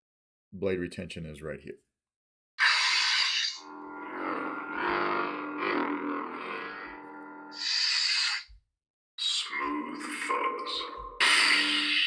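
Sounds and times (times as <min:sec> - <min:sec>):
lightsaber multi-tone hum: 0:02.6 - 0:08.5.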